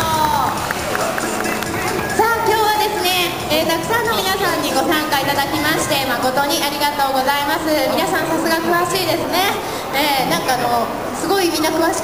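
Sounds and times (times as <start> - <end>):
woman's amplified voice: 0.0 - 0.6, 2.0 - 12.0
crowd clapping: 0.0 - 3.6
music over pa system: 0.0 - 9.0.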